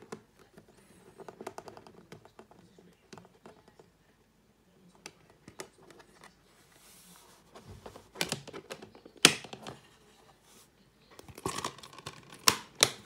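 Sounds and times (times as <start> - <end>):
plastic case clicks and clacks: 8.1 - 9.8, 11.2 - 13.0.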